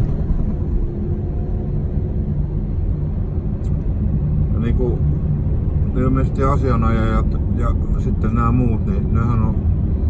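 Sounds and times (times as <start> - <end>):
car engine rumble inside cabin: 0.0 - 10.0.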